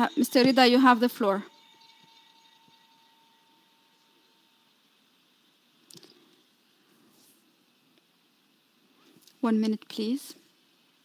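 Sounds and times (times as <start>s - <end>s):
faint steady tone: 0.0s - 11.0s.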